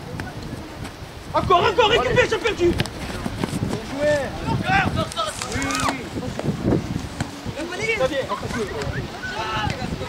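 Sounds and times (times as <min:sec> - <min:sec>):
wind rumble on microphone: 0:00.0 - 0:10.0
people shouting calls: 0:04.3 - 0:06.2.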